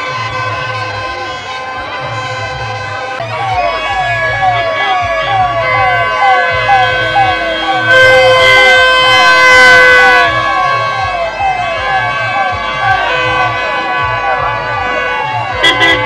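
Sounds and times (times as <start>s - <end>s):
procession music: 0.0s - 16.0s
siren-like rising whoop: 3.2s - 16.0s.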